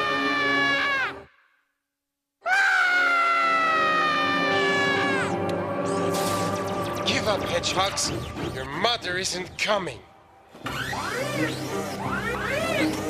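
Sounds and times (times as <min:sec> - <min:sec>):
cartoon girl wailing: 0:00.0 - 0:01.3, 0:02.4 - 0:05.4.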